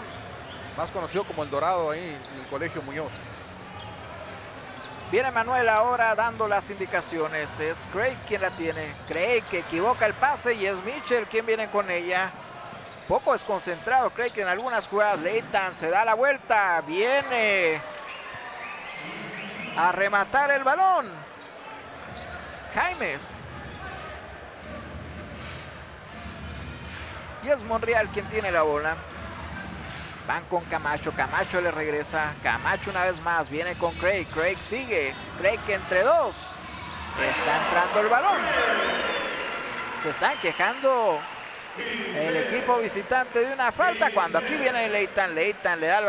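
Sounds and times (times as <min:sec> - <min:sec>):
arena crowd murmur: 0:02.5 - 0:05.8, 0:21.1 - 0:30.3, 0:34.6 - 0:45.2.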